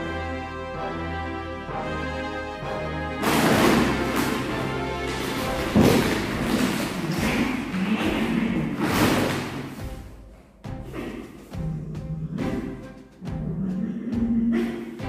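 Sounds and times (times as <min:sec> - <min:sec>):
background music: 0:00.0 - 0:15.0
plastic bag crackling: 0:03.2 - 0:09.8.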